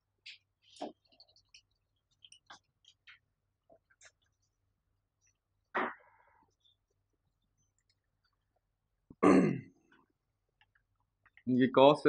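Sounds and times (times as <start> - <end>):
man clearing his throat: 9.2 - 9.8.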